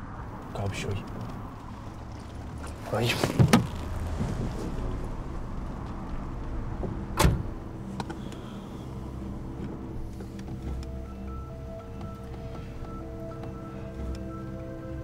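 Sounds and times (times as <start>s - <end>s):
car engine idling hum: 0.0s - 15.0s
clicks and knocks inside car: 1.0s - 4.6s
car door shutting: 2.6s - 4.8s, 6.8s - 8.6s.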